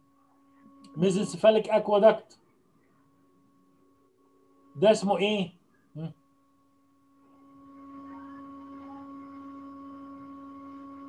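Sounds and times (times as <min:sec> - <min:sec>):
steady humming tone: 0:00.0 - 0:11.0.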